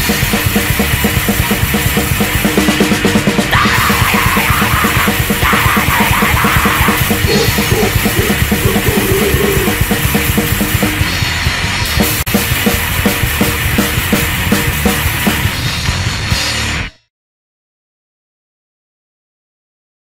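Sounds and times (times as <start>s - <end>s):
drum kit fast beat: 0.0s - 16.8s
distorted electric guitar and bass: 0.0s - 17.1s.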